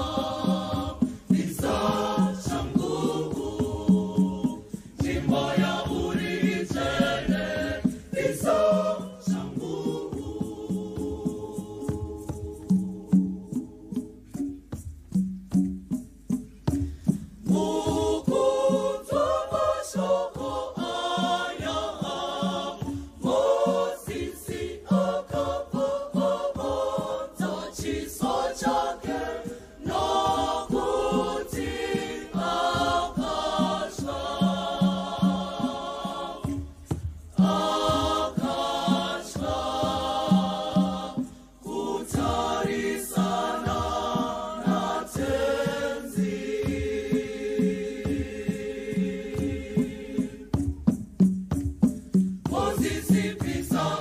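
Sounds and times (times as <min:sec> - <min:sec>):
choir singing a hymn: 0:00.0 - 0:14.4, 0:17.1 - 0:51.3, 0:52.4 - 0:54.0
percussion knocking beat: 0:00.0 - 0:54.0.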